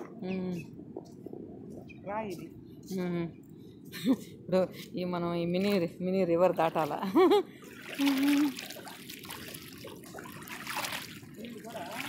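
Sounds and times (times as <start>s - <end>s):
water splashing around wading feet: 7.6s - 12.0s.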